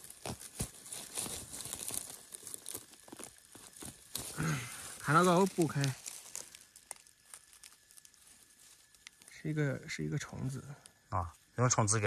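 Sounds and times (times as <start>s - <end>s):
dry leaves crackling and rustling: 0.0s - 11.6s.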